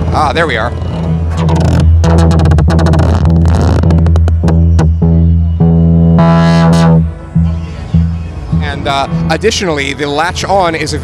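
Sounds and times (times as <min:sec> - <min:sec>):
synthesizer bass note with pulses: 0:00.8 - 0:09.5.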